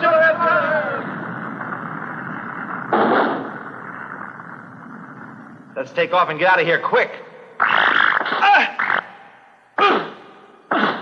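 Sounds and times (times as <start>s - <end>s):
cartoon volcano rumbling: 0.4s - 5.8s
sharp blast: 2.7s - 4.1s.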